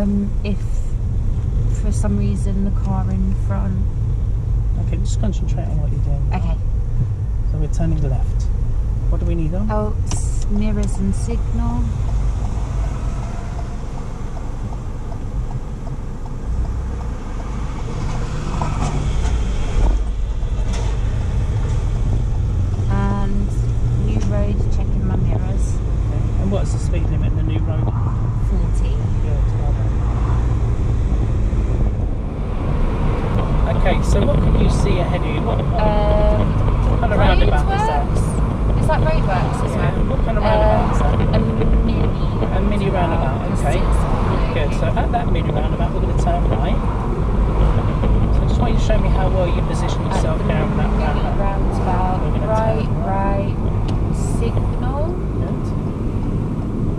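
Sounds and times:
car engine and tyres rumbling: 0.0s - 56.9s
voices talking: 4.8s - 6.7s, 9.1s - 12.0s, 22.9s - 30.0s, 33.4s - 47.0s, 47.6s - 55.8s.

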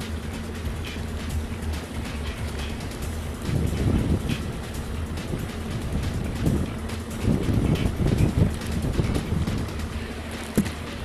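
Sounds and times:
outboard motor running: 0.0s - 11.0s
wind buffeting microphone: 0.6s - 11.0s.

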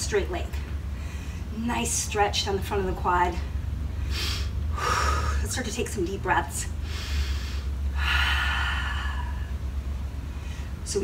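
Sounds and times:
steady low hum: 0.0s - 11.0s
woman breathing deeply: 0.9s - 1.5s, 3.9s - 5.5s, 6.8s - 9.6s, 10.2s - 10.8s.

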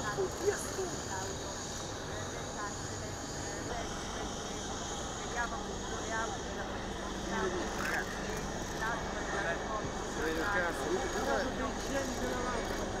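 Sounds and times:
low hum of engines: 0.0s - 13.0s
people talking indistinctly: 0.0s - 13.0s.

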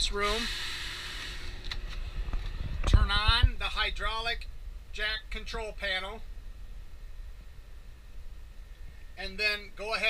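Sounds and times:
steady low rumble: 1.4s - 10.0s.

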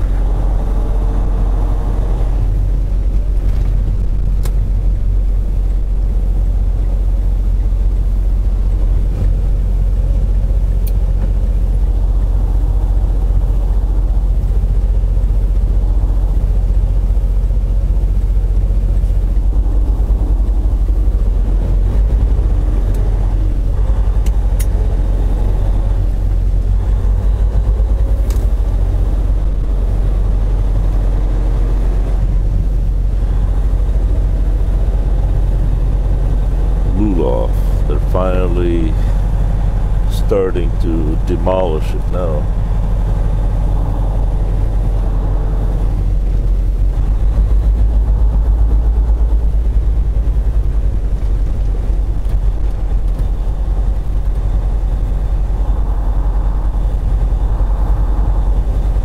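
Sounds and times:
diesel truck engine rumbling: 0.0s - 59.0s.

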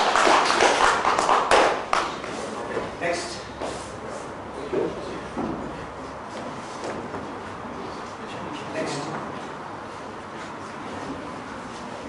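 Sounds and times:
hands clapping: 0.0s - 2.4s.

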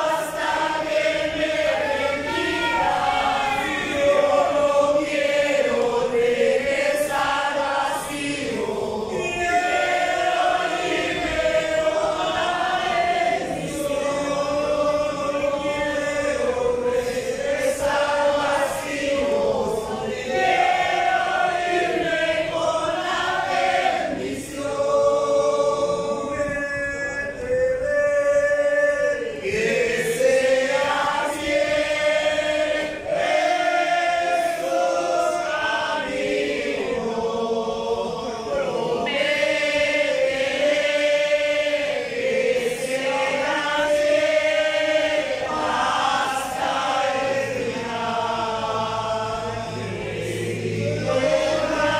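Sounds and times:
congregation singing a hymn: 0.0s - 51.9s.

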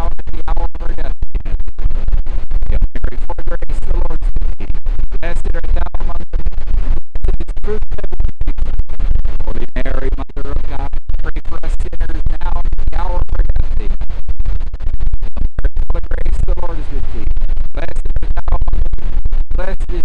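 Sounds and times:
man speaking: 0.0s - 1.2s, 2.7s - 6.2s, 7.3s - 7.8s, 9.5s - 14.0s, 15.7s - 17.2s, 17.8s - 18.6s, 19.6s - 20.0s.

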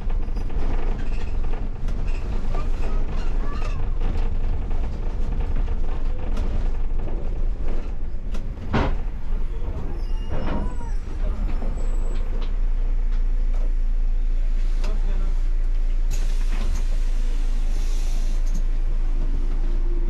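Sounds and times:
bus engine and road rumble: 0.0s - 20.0s
bus idling hum: 0.0s - 20.0s.

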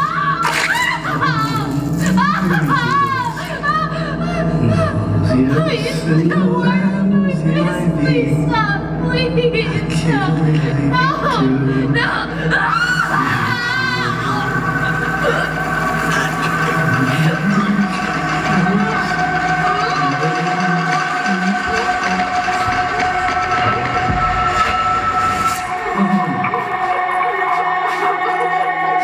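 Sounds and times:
music with long held tones: 0.0s - 29.0s
wavering voice: 0.0s - 29.0s.

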